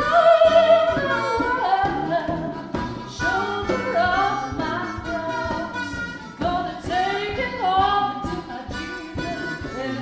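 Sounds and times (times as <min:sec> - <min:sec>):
harmonica: 0:00.0 - 0:10.0
woman's lead voice: 0:00.0 - 0:10.0.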